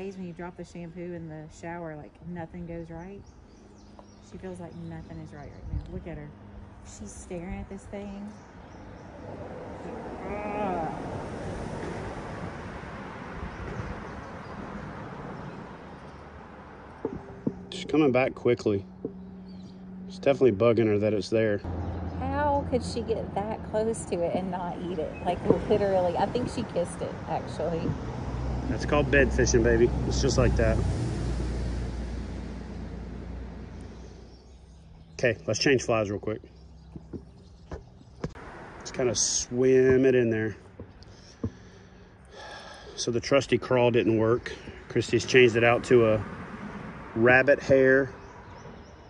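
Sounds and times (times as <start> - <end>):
road traffic rushing overhead: 0.0 - 49.0.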